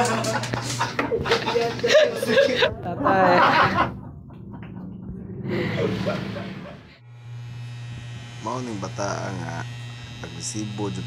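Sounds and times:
electric hair clipper buzzing: 7.0s - 11.0s.

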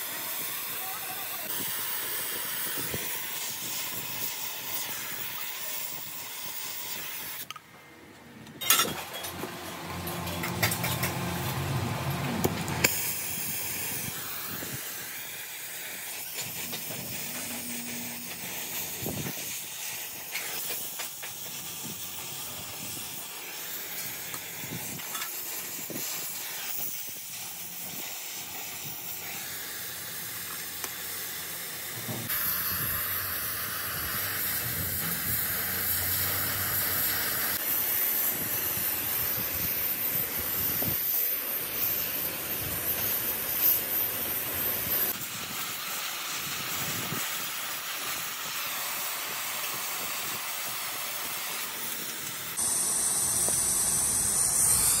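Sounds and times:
gas torch flame hissing: 0.0s - 7.6s, 9.9s - 55.0s.

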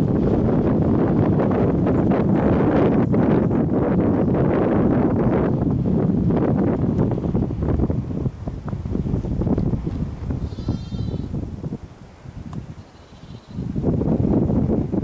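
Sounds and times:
wind buffeting microphone: 0.0s - 15.0s
lamb bleat: 10.4s - 11.3s, 12.8s - 13.7s.

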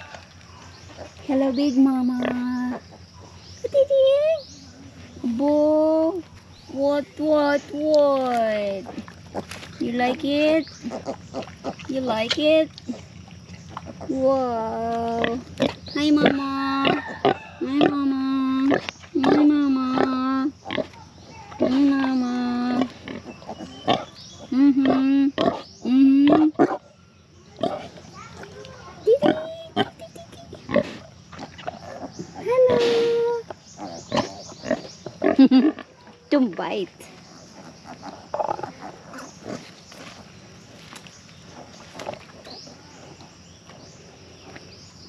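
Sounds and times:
pig grunting: 8.7s - 12.0s, 21.6s - 26.9s, 27.6s - 28.5s, 30.6s - 36.0s, 37.2s - 40.2s.

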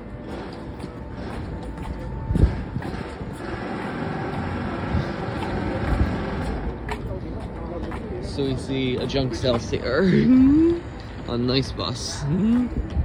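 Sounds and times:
vehicle rumbling: 0.0s - 13.0s.

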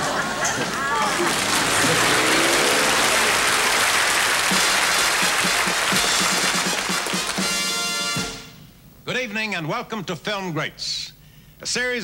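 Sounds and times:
audience applause: 0.0s - 7.7s
theme music: 1.8s - 8.6s.

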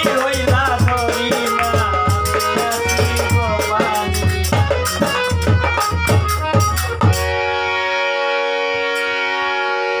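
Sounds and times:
harmonium chord: 0.0s - 10.0s.

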